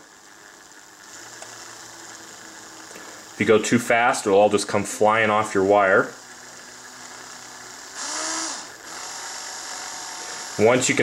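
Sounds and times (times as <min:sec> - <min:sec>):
cordless drill motor whine: 0:00.0 - 0:11.0.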